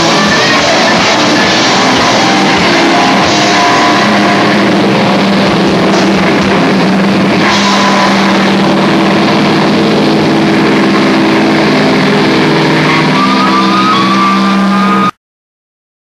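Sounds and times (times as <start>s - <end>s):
thin high whine: 0.0s - 15.1s
distorted guitars and bass chord: 0.0s - 15.2s.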